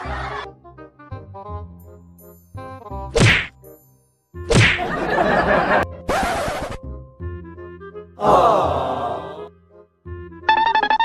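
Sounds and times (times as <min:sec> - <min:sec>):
light melodic background music: 0:00.0 - 0:11.0
loud whack: 0:03.2 - 0:03.5, 0:04.5 - 0:04.9.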